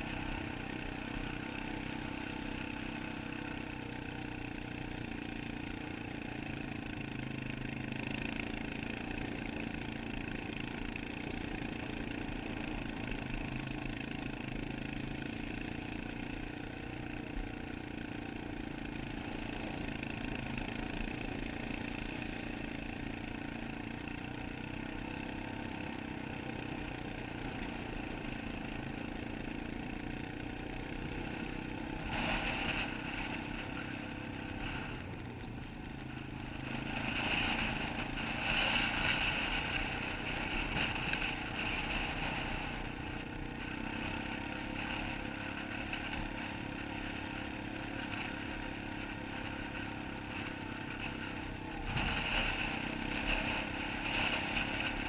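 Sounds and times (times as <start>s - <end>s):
atv engine running steadily: 0.0s - 55.0s.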